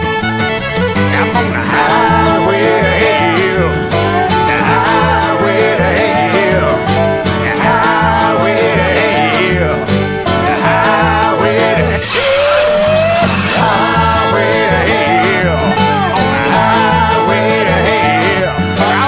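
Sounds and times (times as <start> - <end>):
bluegrass banjo and guitar picking: 0.0 - 19.0
rhythmic bass line: 0.0 - 19.0.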